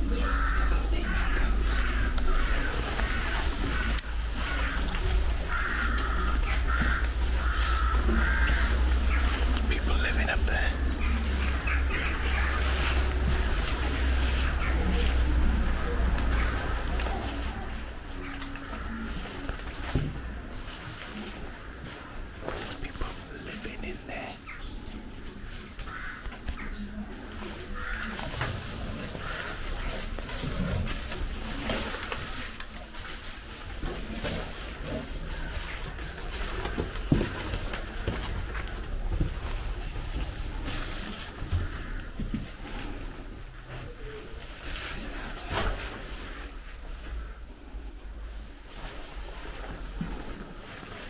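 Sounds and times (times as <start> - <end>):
footsteps on rubble and dry leaves: 1.9 - 15.6.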